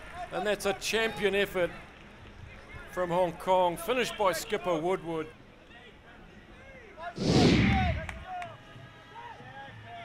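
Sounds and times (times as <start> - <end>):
rushing whoosh transition effect: 7.2 - 8.2.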